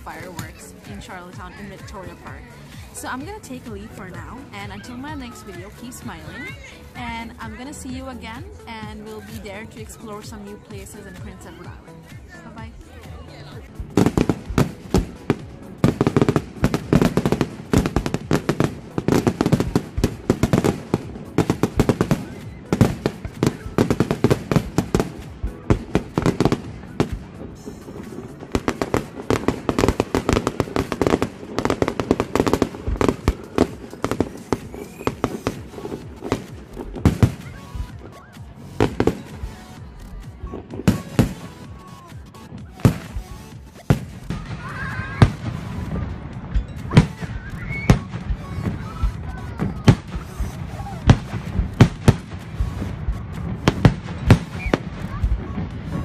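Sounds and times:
fireworks bangs and crackles: 0:00.0 - 0:56.0.

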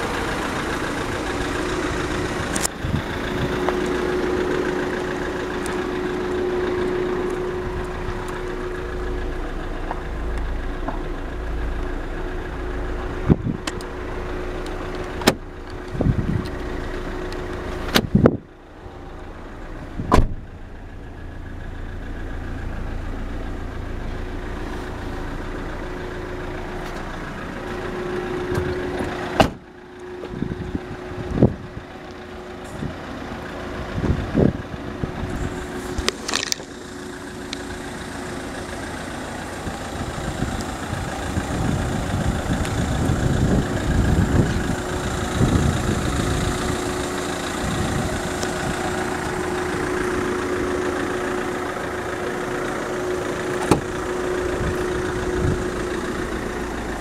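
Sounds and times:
car engine idling: 0:00.0 - 0:57.0
sharp knocks and thuds: 0:20.1 - 0:20.4.

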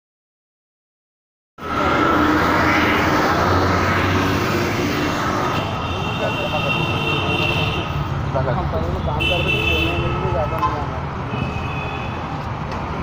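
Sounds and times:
voices: 0:01.6 - 0:11.1
traffic engines rumbling: 0:01.6 - 0:13.0.

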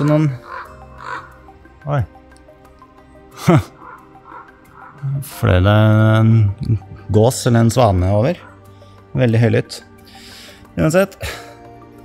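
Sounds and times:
large waterfowl calling: 0:00.0 - 0:01.4, 0:03.7 - 0:05.2.

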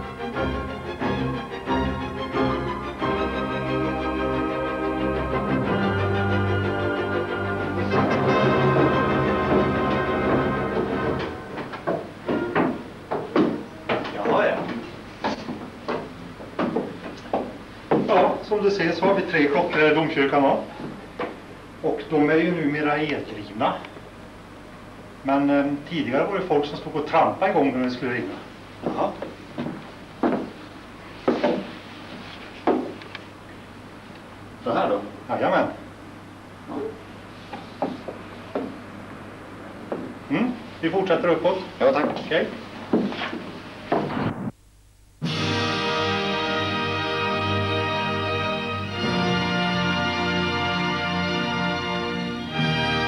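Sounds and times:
organ chords: 0:00.0 - 0:13.9, 0:44.2 - 0:53.0
heavy footsteps on wooden floor: 0:08.0 - 0:18.3, 0:28.7 - 0:33.0, 0:37.5 - 0:38.8, 0:39.8 - 0:40.2, 0:42.1 - 0:44.2.

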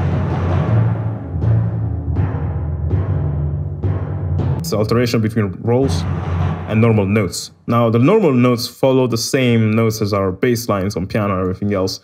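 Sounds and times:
timpani roll: 0:00.0 - 0:07.5
timpani struck note: 0:00.0 - 0:07.5.

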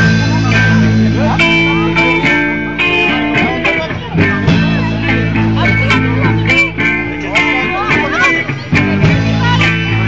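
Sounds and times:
electric and acoustic guitars: 0:00.0 - 0:10.0.

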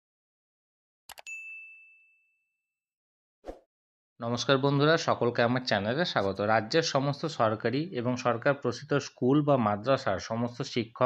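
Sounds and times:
bright bell ding: 0:01.2 - 0:02.4.

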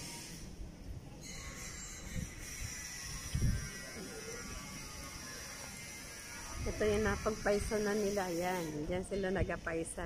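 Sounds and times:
wind rumble: 0:00.1 - 0:05.0.

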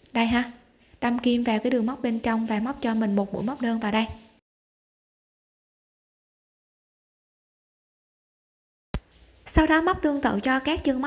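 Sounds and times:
woman narrating: 0:00.0 - 0:04.4, 0:09.4 - 0:11.0.

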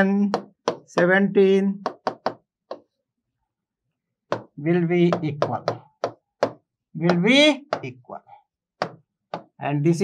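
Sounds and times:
pen tapping on writing board: 0:00.2 - 0:01.2, 0:01.8 - 0:02.9, 0:04.3 - 0:08.0, 0:08.8 - 0:09.6.

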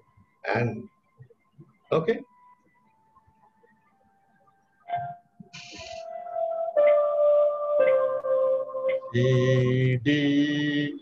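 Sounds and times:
electronic keyboard notes: 0:01.6 - 0:11.0.

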